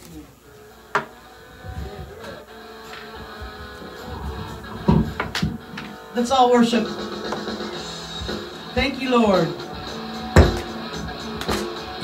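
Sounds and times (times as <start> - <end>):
microphone handling noise: 1.6 - 2.4.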